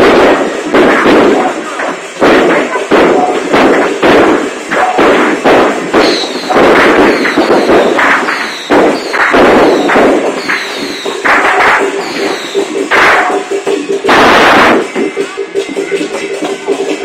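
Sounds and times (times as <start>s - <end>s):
firecrackers crackling: 0.0s - 17.0s.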